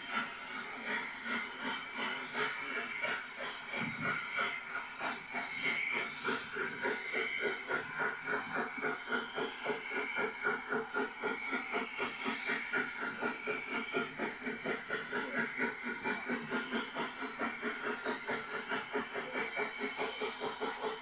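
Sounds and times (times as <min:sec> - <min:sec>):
steam hissing: 0:00.0 - 0:21.0
steam locomotive chuffing: 0:00.0 - 0:21.0.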